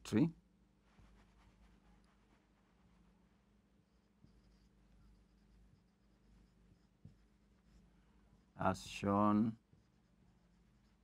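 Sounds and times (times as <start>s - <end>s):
marker pen writing on whiteboard: 1.0s - 8.6s, 9.6s - 11.0s.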